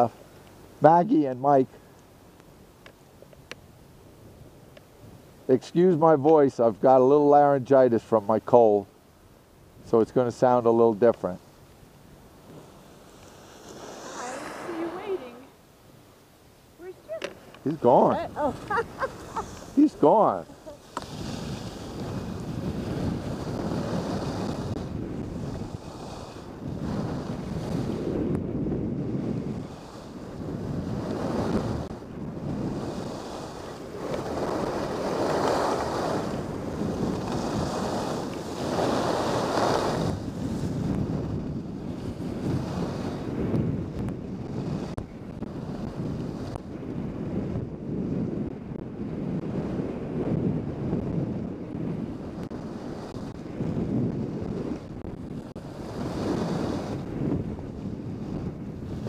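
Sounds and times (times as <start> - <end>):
wind buffeting microphone: 3.7 - 59.0
skis hissing on snow: 12.6 - 15.5, 18.4 - 24.8, 25.4 - 28.0, 32.7 - 40.7.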